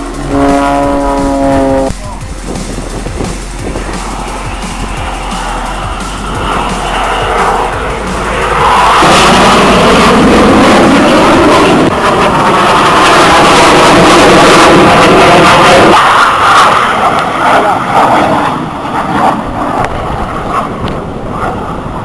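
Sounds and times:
jet aircraft flying past: 0.0s - 22.0s.

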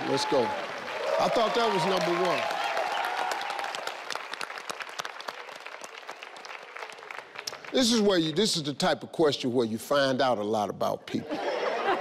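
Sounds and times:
audience applauding: 0.0s - 8.7s.

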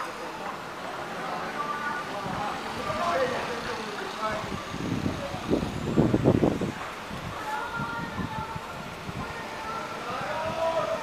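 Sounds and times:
faint voices of passers-by: 0.0s - 11.0s.

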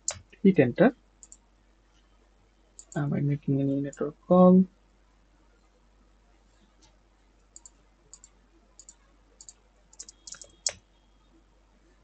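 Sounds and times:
computer mouse clicks: 0.0s - 0.3s, 1.2s - 1.4s, 2.8s - 3.0s, 6.8s - 10.9s.

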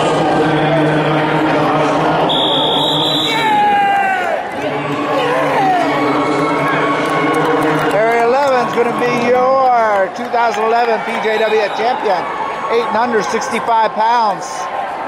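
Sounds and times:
crowd cheering: 0.0s - 15.0s.

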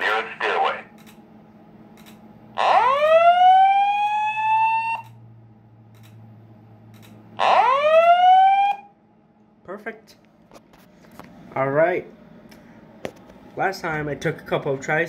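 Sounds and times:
rising whoop alarm tone: 2.6s - 5.1s, 7.4s - 8.9s.

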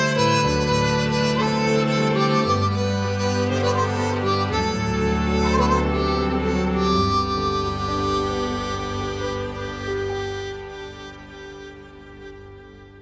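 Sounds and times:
bass line: 0.0s - 13.0s
harmonica melody: 0.0s - 13.0s.

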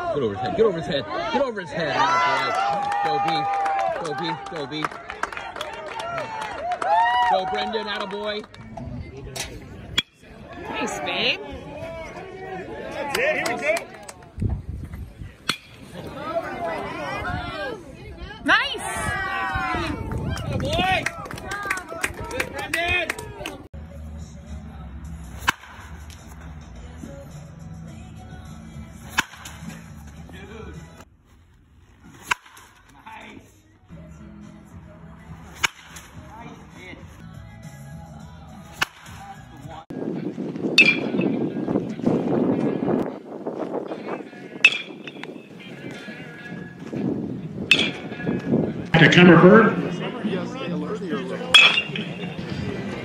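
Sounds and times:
outdoor background noise: 0.0s - 53.0s
metal bat hitting ball: 15.4s - 15.8s, 25.3s - 26.3s, 29.0s - 29.9s, 32.0s - 33.0s, 35.5s - 36.2s, 38.7s - 39.3s, 40.8s - 41.3s, 44.6s - 45.3s, 47.7s - 48.2s, 51.5s - 52.4s.

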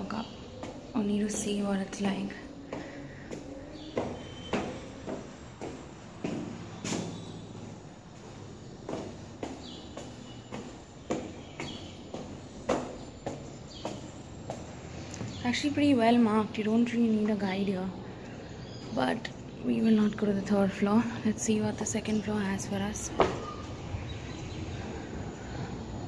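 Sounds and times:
footsteps on concrete stairs: 0.1s - 15.7s.

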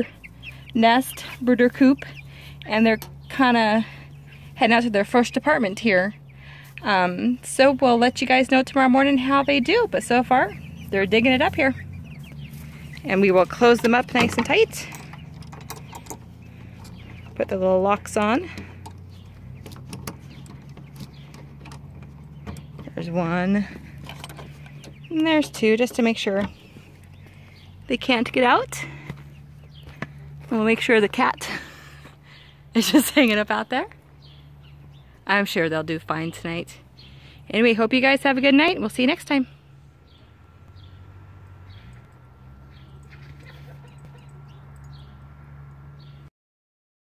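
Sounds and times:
steady low hum: 0.0s - 45.9s
bird chirping: 0.0s - 46.3s.

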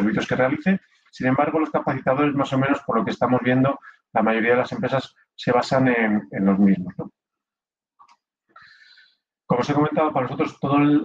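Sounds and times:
man talking: 0.0s - 7.1s, 9.5s - 11.0s
quiet in-breath: 3.8s - 4.2s, 8.5s - 9.3s.

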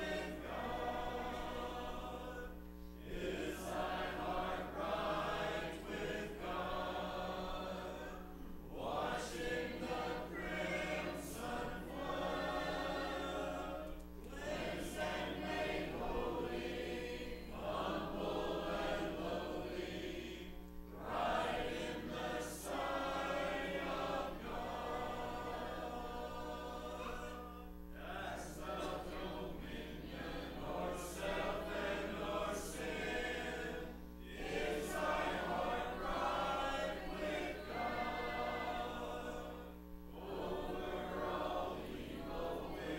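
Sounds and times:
congregation singing a hymn: 0.0s - 42.9s.

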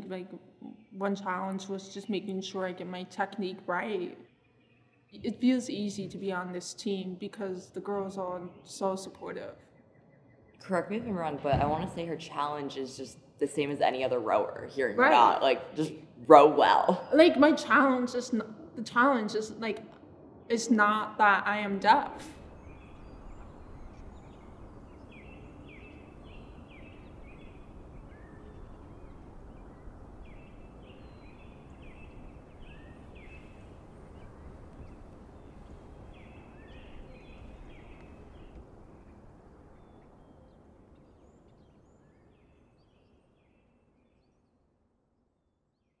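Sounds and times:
steady outdoor noise: 0.0s - 44.0s.

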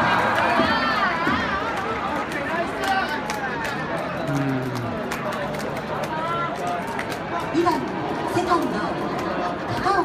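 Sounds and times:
crowd cheering: 0.0s - 10.0s
stadium crowd noise: 0.0s - 10.0s.

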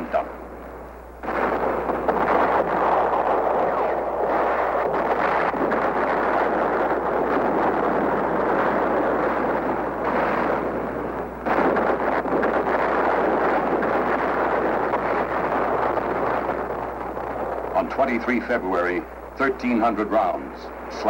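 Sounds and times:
roaring rumble of explosions: 0.0s - 21.0s.

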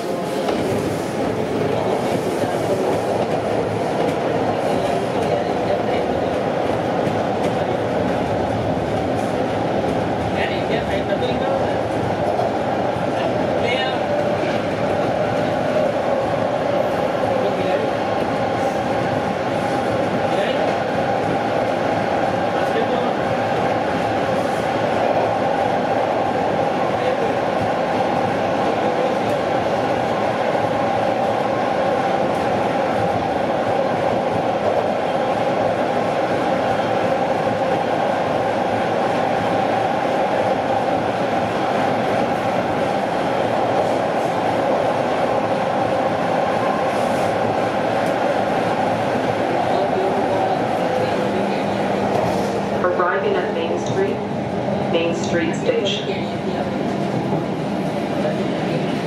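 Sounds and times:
subway car wheels on rails: 0.0s - 59.0s.

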